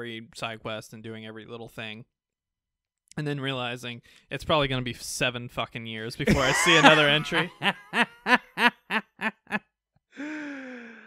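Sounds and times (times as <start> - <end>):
man laughing: 6.3 - 9.6.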